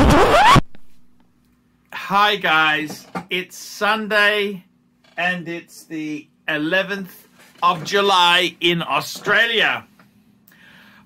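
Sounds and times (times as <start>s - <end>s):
faint steady hum: 0.7s - 11.0s.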